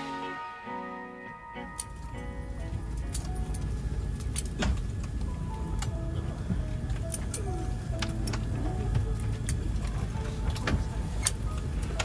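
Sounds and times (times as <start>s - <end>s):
steady low cabin hum: 0.0s - 12.0s.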